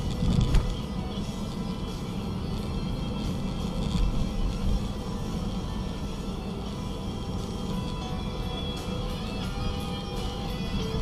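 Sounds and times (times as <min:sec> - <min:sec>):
car radio music: 0:00.0 - 0:11.0
road and engine rumble: 0:00.0 - 0:11.0.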